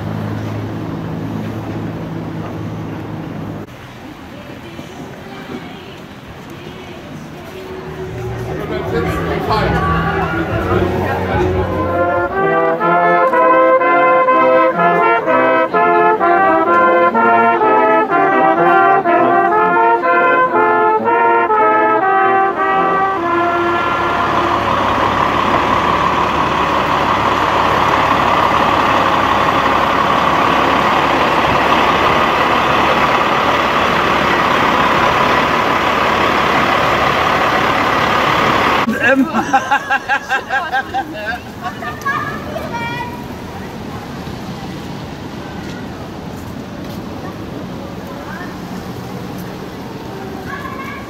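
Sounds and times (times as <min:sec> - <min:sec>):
truck diesel engine running: 0:07.0 - 0:13.1, 0:23.2 - 0:39.0
brass instruments playing melody: 0:07.4 - 0:32.7.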